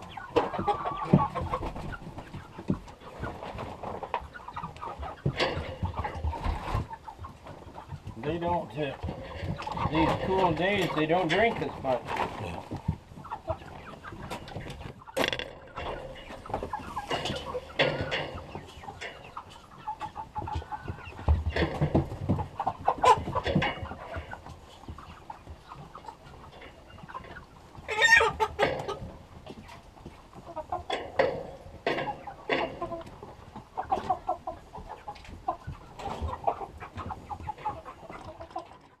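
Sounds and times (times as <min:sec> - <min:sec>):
chickens clucking: 0:00.0 - 0:39.0.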